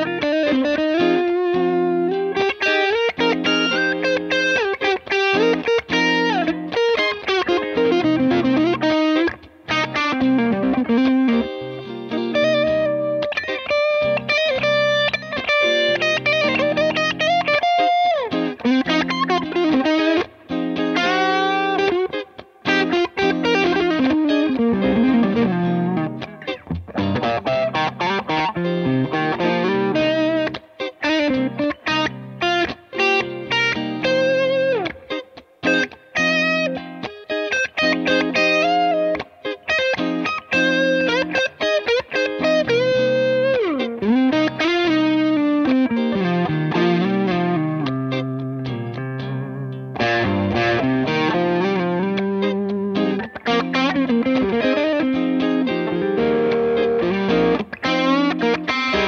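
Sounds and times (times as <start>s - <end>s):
electric guitar lead lines and chords: 0.0s - 59.0s.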